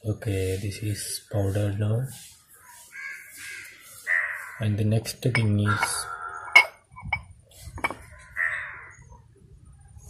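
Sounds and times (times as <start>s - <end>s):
crow cawing: 2.9s - 4.6s, 5.6s - 6.6s, 8.0s - 9.1s.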